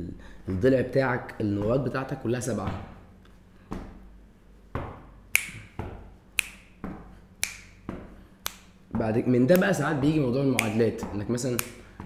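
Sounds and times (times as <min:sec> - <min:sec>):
hand taps: 0:04.7 - 0:12.0
finger snaps: 0:05.3 - 0:06.8, 0:07.4 - 0:08.8, 0:09.5 - 0:09.9, 0:10.5 - 0:10.9, 0:11.5 - 0:11.9.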